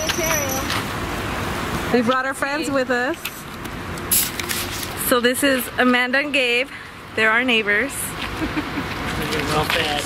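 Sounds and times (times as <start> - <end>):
faint traffic noise: 0.0 - 10.0.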